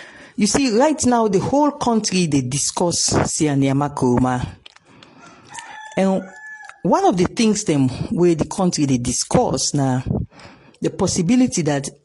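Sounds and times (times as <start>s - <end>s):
woman speaking: 0.4s - 4.6s, 5.9s - 12.0s
rooster crowing: 5.1s - 6.9s.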